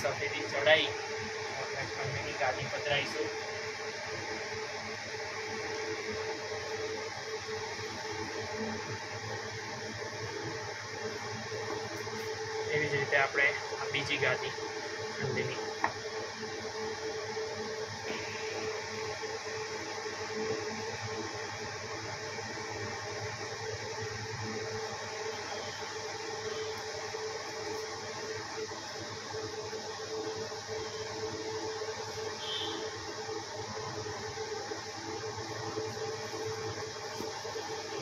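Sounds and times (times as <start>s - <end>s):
steady mechanical hum: 0.0s - 38.0s.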